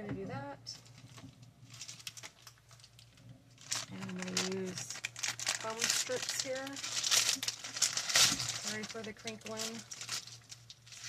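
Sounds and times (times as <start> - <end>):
plastic packaging crinkling: 0.7 - 11.0.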